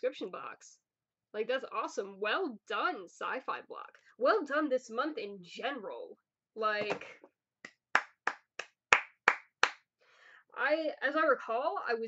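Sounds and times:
person clapping hands slowly: 0:07.6 - 0:09.8.

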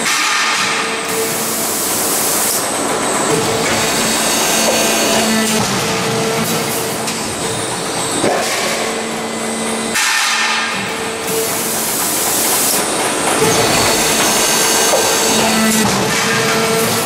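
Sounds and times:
motor and hydraulic hum: 0:00.0 - 0:17.0.

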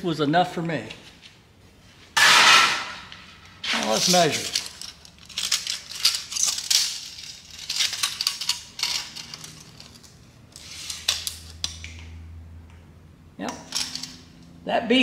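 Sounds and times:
tape measure rattling on metal: 0:02.2 - 0:11.9.

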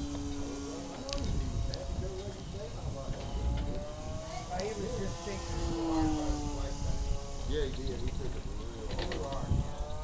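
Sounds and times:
model airplane motor droning: 0:00.0 - 0:10.0.

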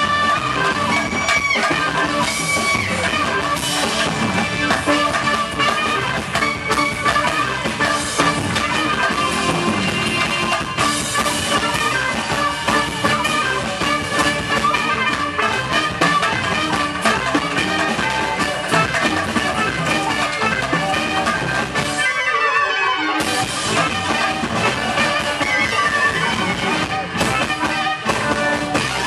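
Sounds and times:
drum kit: 0:00.0 - 0:22.3, 0:23.2 - 0:29.0
accordion: 0:00.0 - 0:29.0
clarinet: 0:00.0 - 0:29.0
electric guitar: 0:00.0 - 0:29.0.

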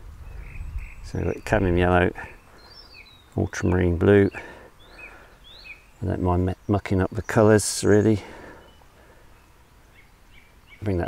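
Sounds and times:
distant bird chirps: 0:00.0 - 0:11.0
man's voice: 0:01.1 - 0:02.4.

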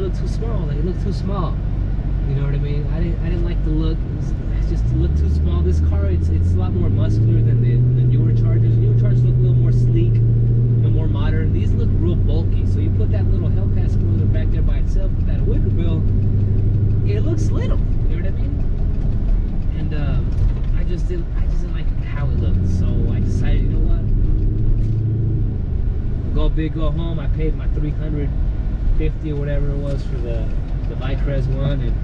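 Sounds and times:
car engine humming: 0:00.0 - 0:32.0
person talking: 0:17.0 - 0:18.6.

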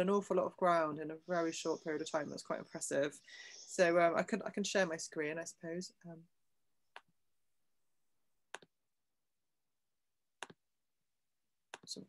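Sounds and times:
computer mouse clicks: 0:10.4 - 0:10.6, 0:11.7 - 0:12.0.

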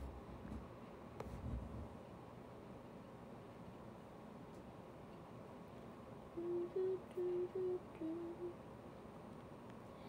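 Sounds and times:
woman humming a tune: 0:06.4 - 0:08.6.

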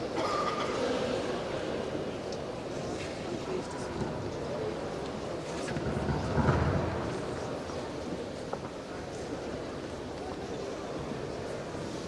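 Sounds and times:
sports hall crowd rumble: 0:00.0 - 0:12.0.

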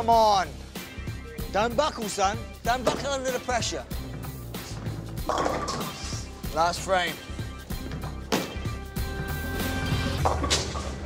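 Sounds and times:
background music with low beat: 0:00.0 - 0:11.0
bowling pins clattering: 0:02.8 - 0:06.3, 0:10.0 - 0:11.0
bowling ball rolling on wooden lane: 0:05.0 - 0:06.2, 0:10.1 - 0:11.0.

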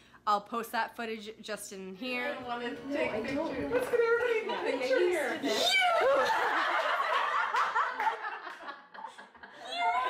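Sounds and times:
women laughing: 0:05.4 - 0:10.0.

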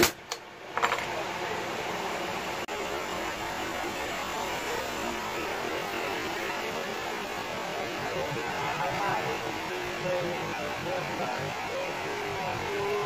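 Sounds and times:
steady background hum and hiss: 0:00.0 - 0:13.0.

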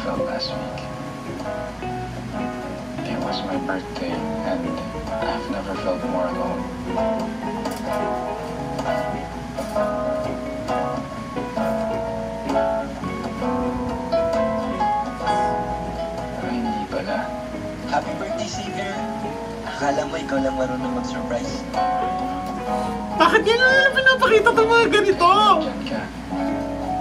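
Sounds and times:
acoustic guitar: 0:00.0 - 0:27.0.

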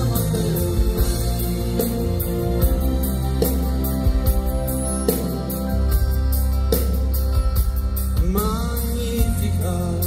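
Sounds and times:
live pop band playing: 0:00.0 - 0:10.0.

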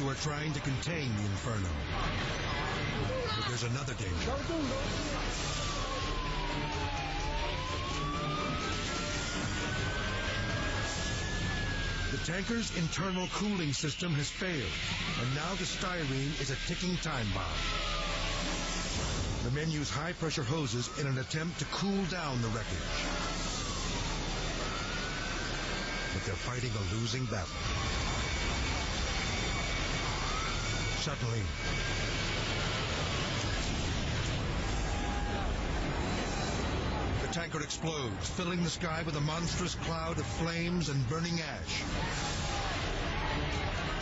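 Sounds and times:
fire engine siren wailing: 0:01.8 - 0:44.0
faint rising whine: 0:22.3 - 0:37.4.

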